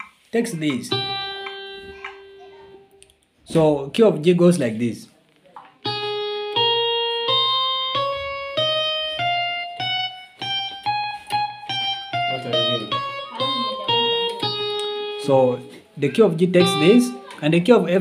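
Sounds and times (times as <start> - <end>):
electronic keyboard playing a scale: 0.6 - 3.0, 5.9 - 17.5.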